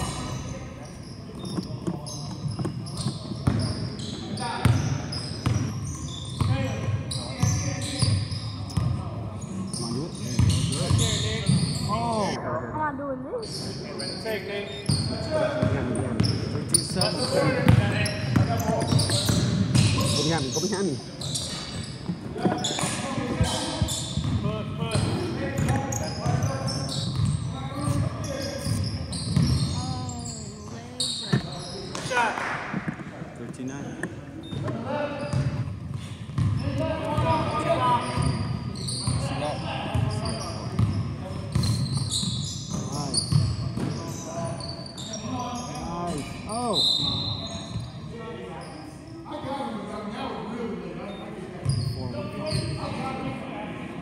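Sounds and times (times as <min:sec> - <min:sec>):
sneakers squeaking: 0:00.0 - 0:12.4, 0:13.3 - 0:49.5, 0:51.1 - 0:53.3
basketball bouncing: 0:36.4 - 0:36.6.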